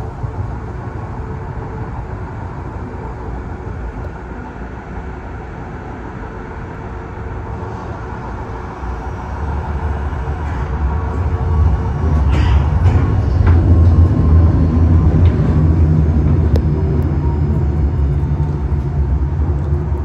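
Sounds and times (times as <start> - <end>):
faint steady hum: 0.0 - 20.0
train wheels rumbling on track: 0.0 - 20.0.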